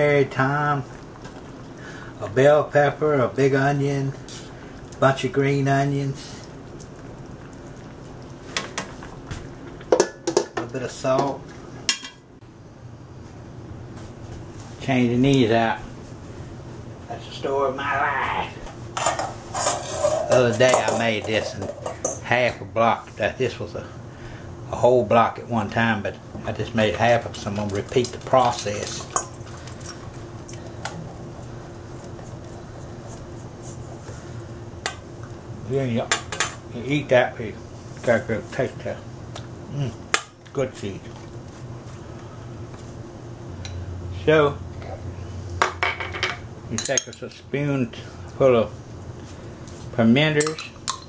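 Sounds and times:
ribs simmering: 0.0 - 11.9, 14.2 - 45.6
steady low hum: 0.0 - 51.0.

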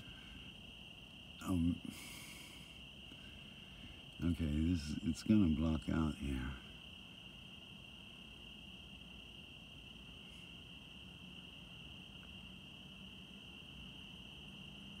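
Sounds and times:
crickets trilling: 0.0 - 15.0.

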